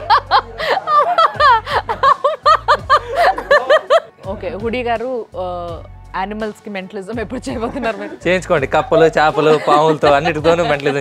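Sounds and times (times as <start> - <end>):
woman laughing hard: 0.0 - 4.1, 9.0 - 11.0.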